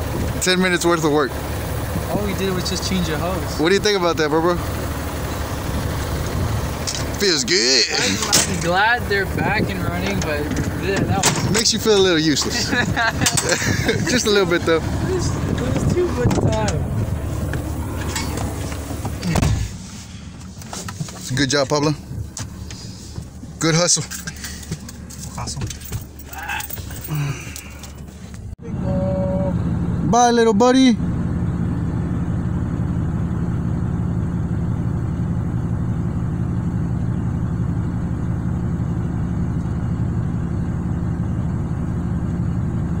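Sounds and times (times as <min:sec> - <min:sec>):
steady outdoor rumble: 0:00.0 - 0:43.0
vehicle engine idling: 0:00.0 - 0:43.0
car door slamming: 0:15.5 - 0:19.8.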